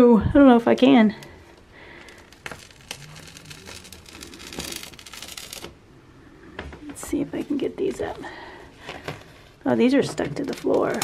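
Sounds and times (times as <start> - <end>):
adhesive pads peeling off: 1.2 - 5.8.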